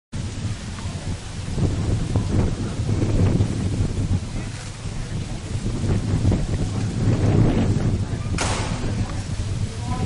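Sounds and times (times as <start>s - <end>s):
wind buffeting microphone: 0.1s - 10.0s.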